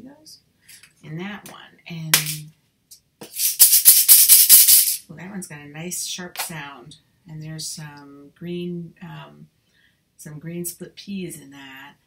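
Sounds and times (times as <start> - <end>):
shaker egg rattling: 3.2 - 5.0.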